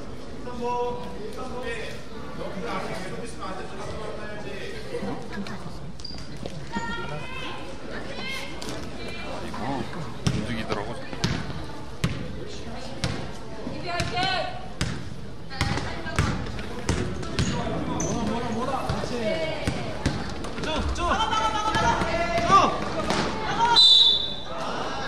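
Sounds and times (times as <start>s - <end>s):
voices of players and spectators: 0.0s - 25.0s
basketball bouncing on gym floor: 10.2s - 12.3s, 14.0s - 17.6s, 18.9s - 20.9s.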